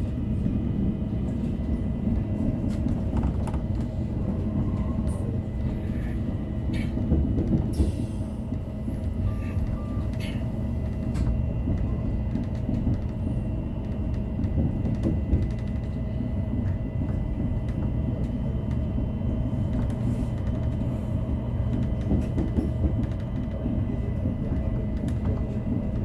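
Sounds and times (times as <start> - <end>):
railcar motors and wheels rumbling: 0.0 - 26.0.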